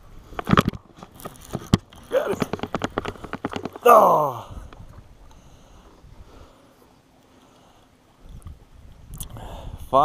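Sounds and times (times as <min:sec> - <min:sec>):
fishing rod and reel rattling: 0:00.3 - 0:04.9.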